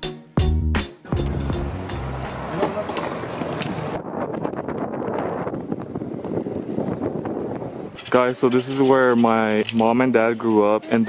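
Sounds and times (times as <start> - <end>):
car road and tyre noise: 1.1 - 10.6.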